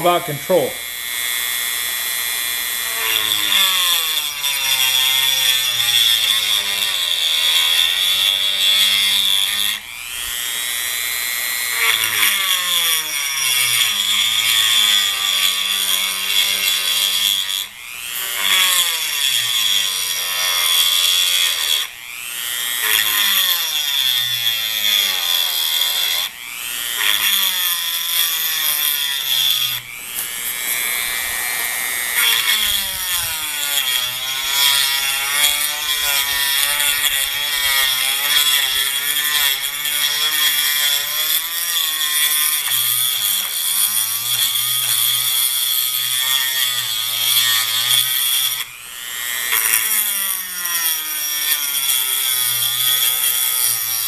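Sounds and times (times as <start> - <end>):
rotary tool grinding stone: 0.0 - 54.0.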